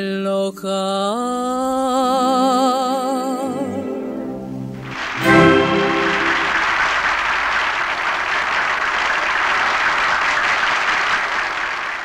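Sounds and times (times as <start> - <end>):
sustained final note of song: 3.5 - 7.0
audience applauding: 4.8 - 12.0.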